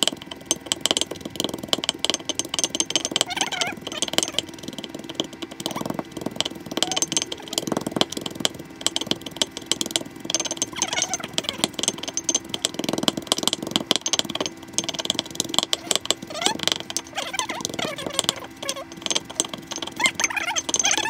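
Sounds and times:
wooden pestle pounding in mortar: 0.0 - 21.0.

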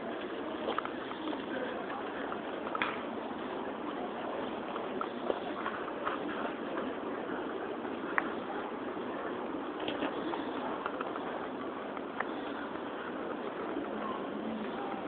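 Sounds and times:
hubbub of people: 0.0 - 15.0.

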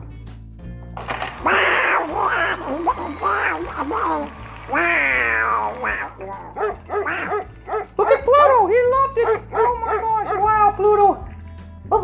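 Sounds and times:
light background music: 0.0 - 12.0
raspy buzzing duck voice: 1.4 - 4.1, 4.7 - 7.9.

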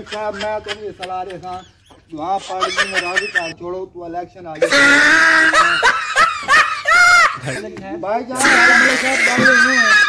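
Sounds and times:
high-pitched laugh track: 0.0 - 3.5.

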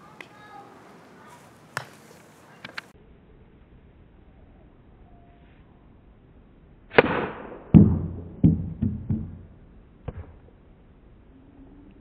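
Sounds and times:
ball knocking on wooden ramp: 7.8 - 9.5.

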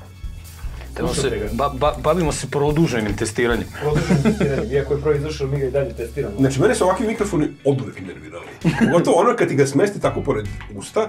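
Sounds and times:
quiet background music: 0.0 - 11.0
man talking: 0.9 - 11.0.

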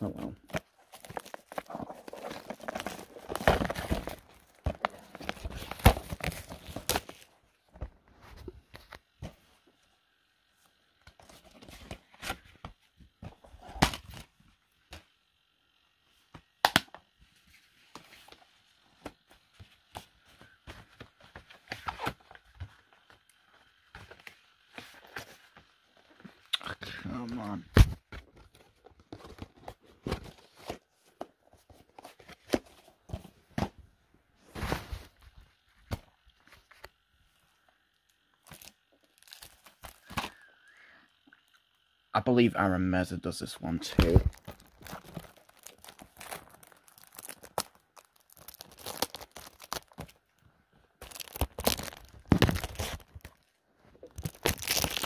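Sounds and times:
plastic cases rustling and scraping: 0.2 - 9.6, 44.0 - 55.0.

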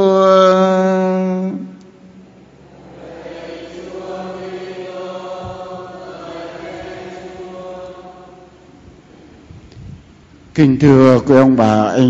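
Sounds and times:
congregation chanting in unison: 2.4 - 9.5.

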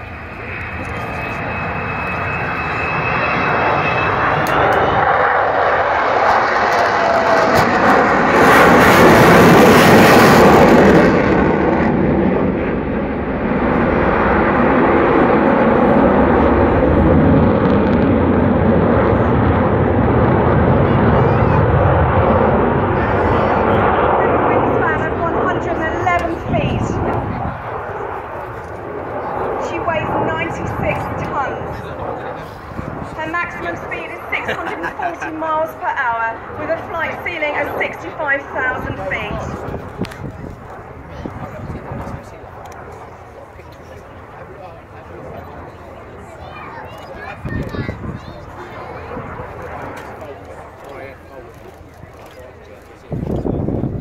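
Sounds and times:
high jet engine whine: 0.0 - 54.0
loud jet roar: 0.0 - 54.0.

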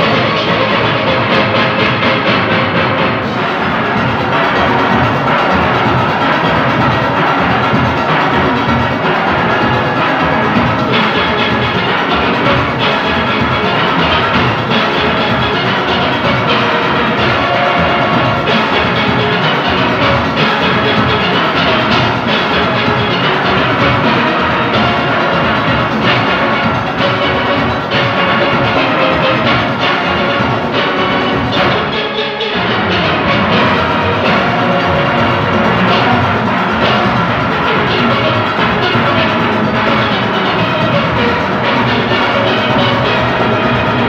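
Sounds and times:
steady percussion beat: 0.0 - 44.0.

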